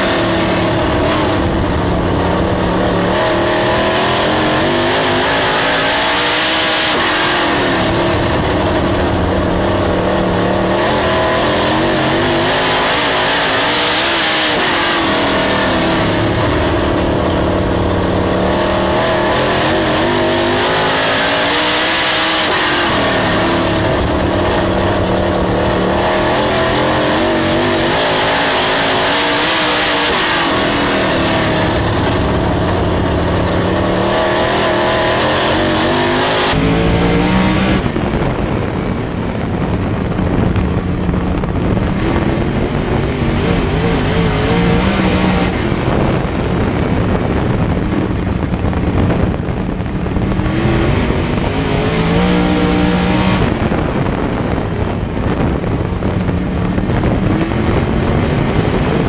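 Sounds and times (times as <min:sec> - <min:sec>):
race car engine revving: 0:00.0 - 0:59.0.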